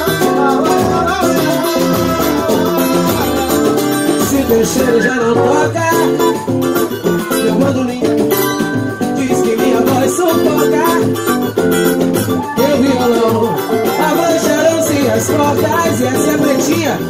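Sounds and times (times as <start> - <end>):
woman singing: 0.0 - 6.4, 12.4 - 16.2
strummed guitars: 0.0 - 17.0.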